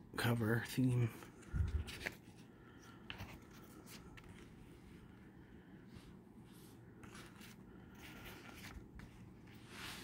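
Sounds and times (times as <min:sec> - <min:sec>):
faint paper rustles: 0:00.2 - 0:05.3, 0:05.9 - 0:10.0.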